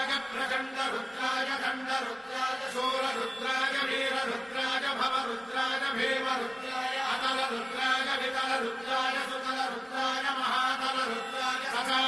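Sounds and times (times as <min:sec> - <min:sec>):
person chanting mantras: 0:00.0 - 0:12.0.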